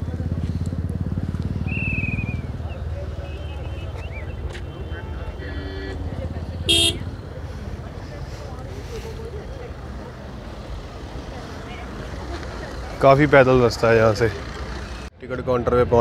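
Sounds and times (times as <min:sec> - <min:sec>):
cars rumbling slowly: 0:00.0 - 0:16.0
faint distant voices: 0:00.0 - 0:16.0
car horn toot: 0:06.7 - 0:07.1.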